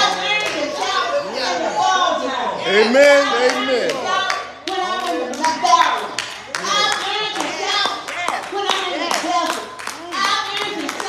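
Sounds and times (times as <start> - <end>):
raised voices calling out: 0.0 - 7.8
hand clapping: 3.5 - 11.0.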